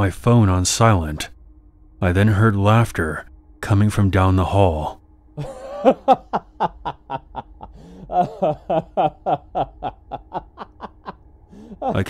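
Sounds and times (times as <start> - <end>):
person laughing: 5.4 - 12.0.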